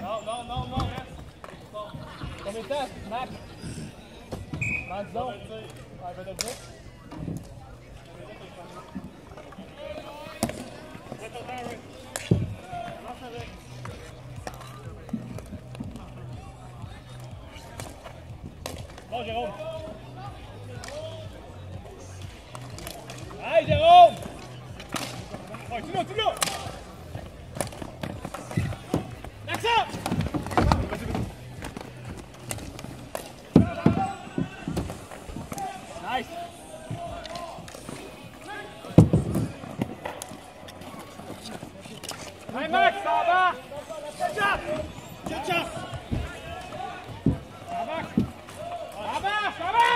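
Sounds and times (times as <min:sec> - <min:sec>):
faint voices: 0:00.0 - 0:49.9
hockey sticks clacking: 0:05.6 - 0:07.6, 0:09.3 - 0:16.1, 0:17.2 - 0:19.3, 0:22.5 - 0:42.8
ball hitting rink boards: 0:22.5 - 0:25.6, 0:27.6 - 0:35.8.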